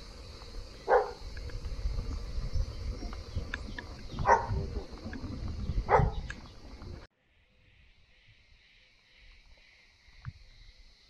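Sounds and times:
bicycle rumble: 0.0 - 7.1
dog barks: 0.9 - 1.2, 4.2 - 4.9, 5.9 - 6.3.

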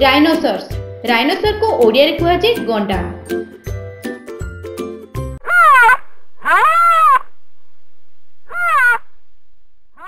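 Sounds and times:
drawn-out high animal cries: 5.4 - 7.2, 8.5 - 9.0.

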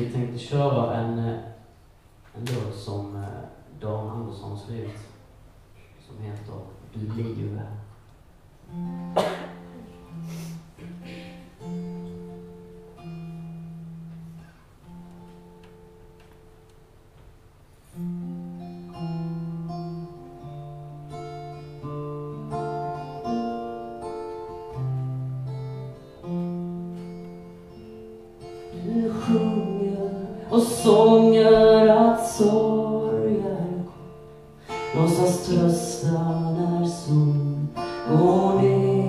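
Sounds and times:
acoustic guitar playing: 3.1 - 39.0.

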